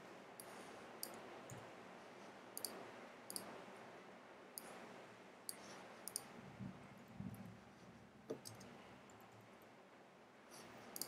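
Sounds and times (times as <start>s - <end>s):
keyboard and mouse clicks: 5.5s - 6.3s, 8.3s - 8.7s.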